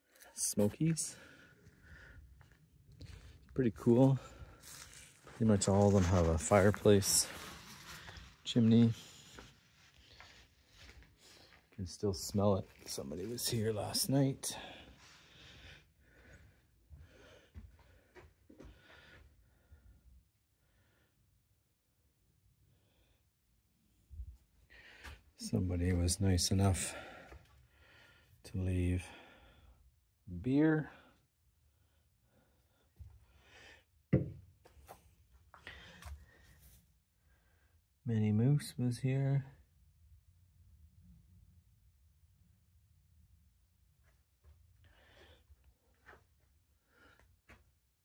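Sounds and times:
faint breaths: 0.1s - 11.8s, 12.6s - 21.3s, 24.7s - 25.4s, 26.7s - 28.4s, 29.0s - 29.9s, 35.6s - 37.8s, 44.8s - 46.2s
rustling and scraping handling noise: 2.9s - 14.1s.

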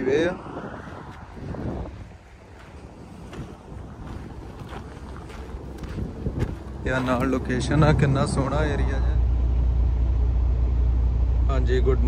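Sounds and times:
wind buffeting microphone: 0.0s - 11.4s.

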